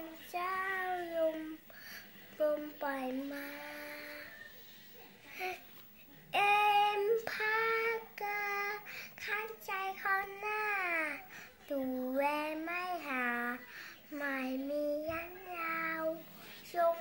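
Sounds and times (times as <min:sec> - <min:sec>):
girl singing unaccompanied: 0:00.0 - 0:04.4, 0:06.3 - 0:17.0.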